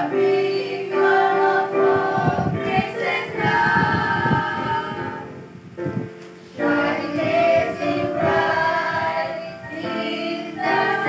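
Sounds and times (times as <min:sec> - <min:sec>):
choir singing gospel song: 0:00.0 - 0:05.5, 0:06.4 - 0:11.0.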